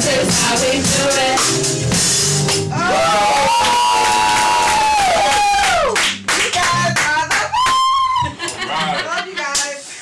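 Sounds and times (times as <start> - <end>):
people clapping: 3.1 - 8.7.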